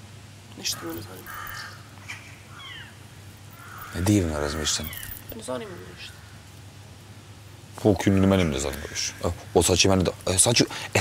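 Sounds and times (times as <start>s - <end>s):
low steady hum: 0.0s - 11.0s
bird chirping: 0.6s - 6.5s.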